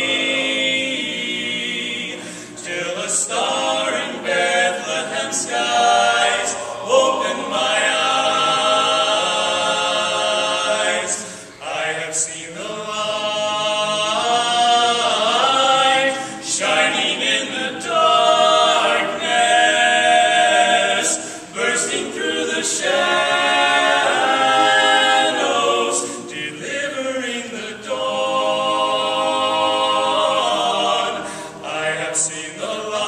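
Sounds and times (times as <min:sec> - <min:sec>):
men's chorus singing a cappella: 0:00.0 - 0:33.0.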